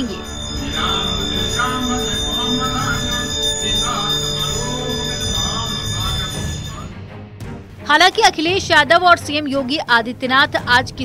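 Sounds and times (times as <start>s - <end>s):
bells ringing: 0.0s - 7.1s
music: 0.0s - 11.0s.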